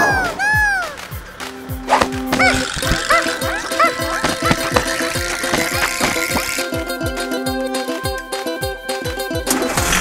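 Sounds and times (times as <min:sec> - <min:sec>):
bouncy cartoon music: 0:00.0 - 0:10.0.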